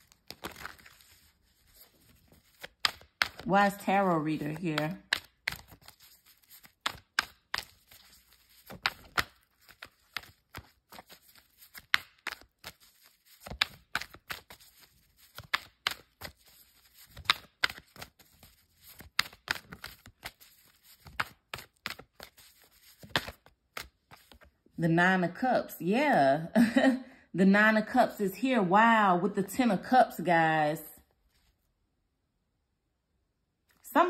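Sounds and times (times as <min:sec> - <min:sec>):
cards being shuffled: 0:00.0 - 0:24.6.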